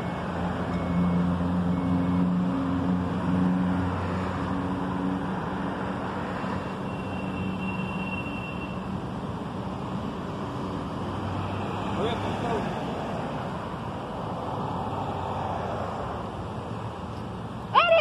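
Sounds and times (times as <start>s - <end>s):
road noise: 0.0s - 18.0s.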